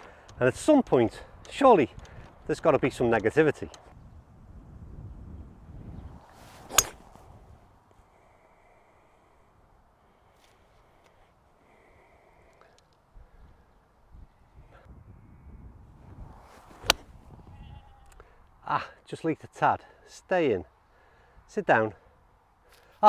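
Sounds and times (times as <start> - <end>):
golf club striking ball: 6.7 - 7.1, 16.8 - 17.2.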